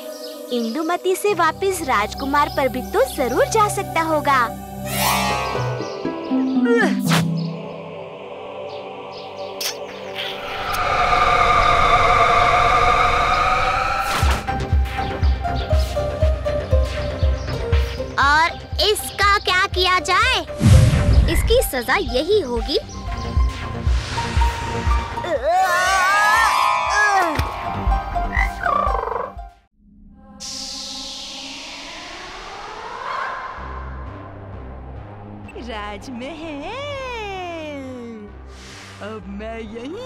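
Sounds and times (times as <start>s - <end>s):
cartoon frog croaking: 28.3s - 29.4s
low rumble: 29.8s - 37.4s.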